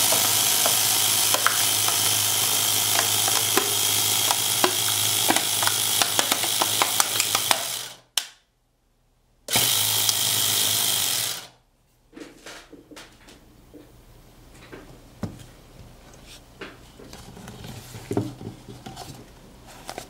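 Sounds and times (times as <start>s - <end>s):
compressor humming and rattling: 0.0s - 8.1s, 9.5s - 11.6s.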